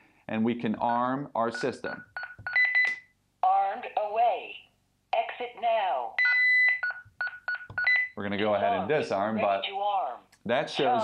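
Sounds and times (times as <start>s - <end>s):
recorded voice speaking: 0.3s - 2.1s, 8.2s - 11.0s
keypad beeps: 1.6s - 3.1s, 6.2s - 8.2s
evenly spaced short beeps: 6.2s - 8.2s
longer beep: 6.2s - 8.2s.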